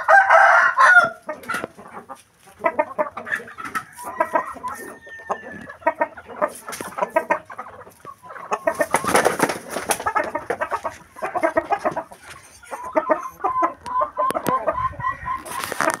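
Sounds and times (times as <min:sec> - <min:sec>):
chicken repeating even cluck: 0:00.0 - 0:16.0
chickens clucking: 0:00.0 - 0:16.0.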